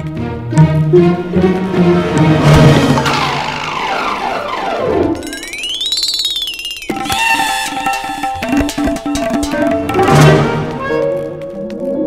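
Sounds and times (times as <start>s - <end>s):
fast rattling pulses: 2.2s - 10.8s
tones gliding downward: 2.4s - 11.0s
whistle-like tone rising and falling: 3.0s - 9.6s.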